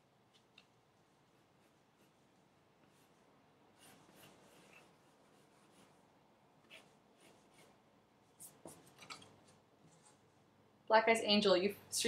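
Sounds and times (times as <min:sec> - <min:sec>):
pencil scratching on paper: 0:01.2 - 0:09.0.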